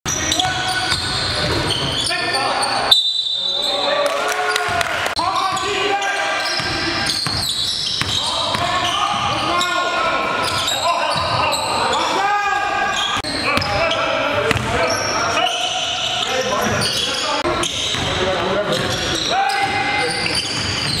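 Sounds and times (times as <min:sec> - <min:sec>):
players calling out: 0:00.1 - 0:21.0
sneakers squeaking: 0:00.1 - 0:21.0.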